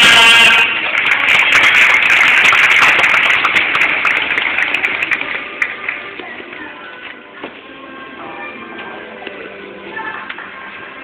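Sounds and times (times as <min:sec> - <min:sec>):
audience clapping: 0:00.0 - 0:06.5
music playing: 0:00.0 - 0:11.0.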